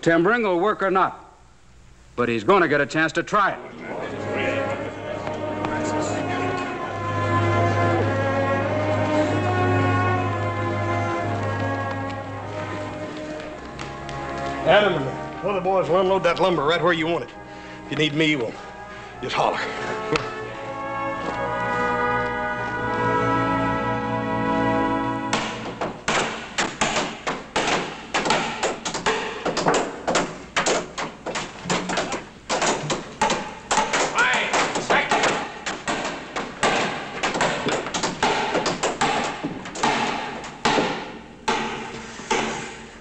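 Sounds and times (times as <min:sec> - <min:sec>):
music of sustained chords: 0:03.6 - 0:26.1
hammers knocking timbers: 0:25.3 - 0:42.6.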